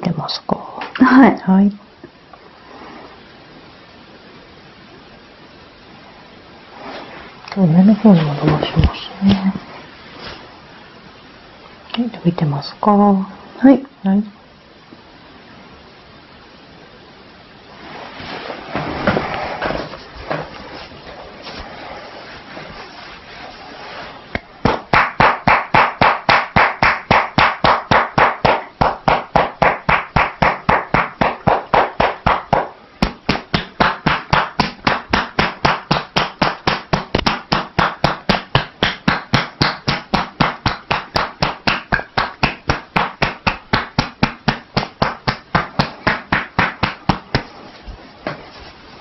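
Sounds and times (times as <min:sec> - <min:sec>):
hands tapping on shoulders: 0:24.6 - 0:47.5.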